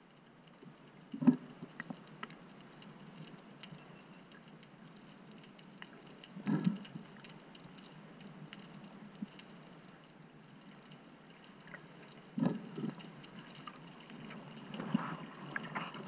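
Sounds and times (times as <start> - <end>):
faint clicks: 0.0 - 16.0
muffled underwater hiss: 0.0 - 16.0.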